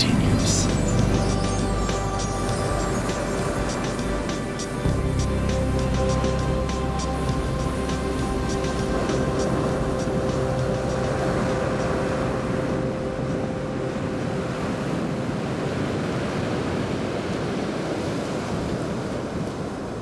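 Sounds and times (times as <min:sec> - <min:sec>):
ocean surf: 0:00.0 - 0:20.0.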